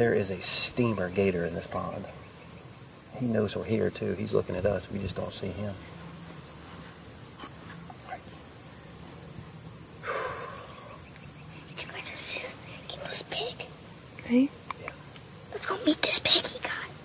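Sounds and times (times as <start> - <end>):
high-pitched insect drone: 0.0 - 17.0
low whispering voices: 7.8 - 8.9, 10.0 - 17.0.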